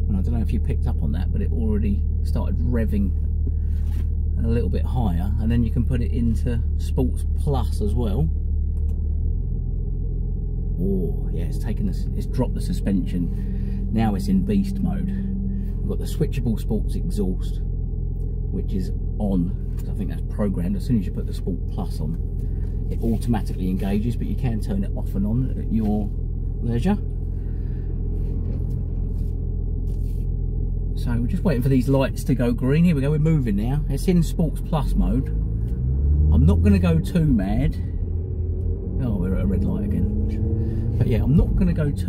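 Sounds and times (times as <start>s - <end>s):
car engine idling: 0.0s - 42.0s.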